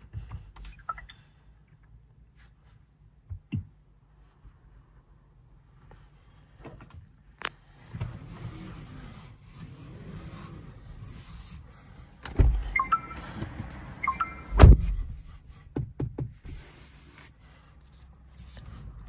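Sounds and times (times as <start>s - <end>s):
short high tones: 14.0s - 14.6s.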